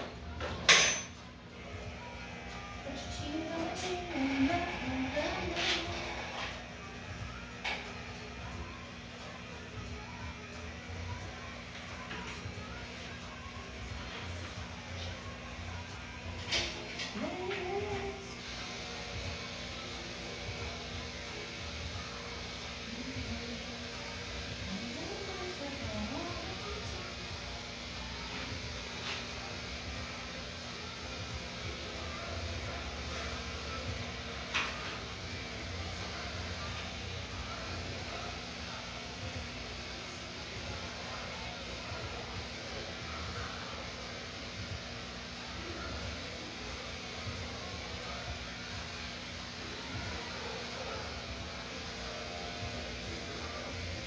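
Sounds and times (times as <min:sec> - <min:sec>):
electric pet clippers humming: 0:01.6 - 0:54.0.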